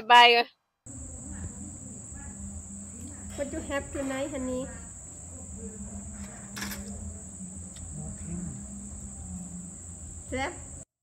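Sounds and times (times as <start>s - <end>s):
low hum: 0.9s - 10.9s
night insects chorus: 0.9s - 10.9s.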